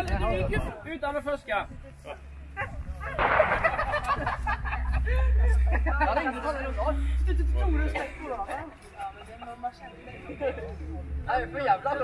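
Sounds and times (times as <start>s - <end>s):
wind rumble on microphone: 0.0s - 8.9s
group talking and calling out: 0.0s - 12.0s.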